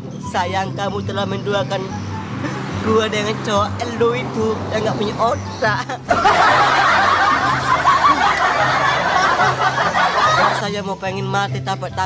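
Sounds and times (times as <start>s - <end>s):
man laughing high-pitched: 2.4s - 2.8s, 5.6s - 10.6s.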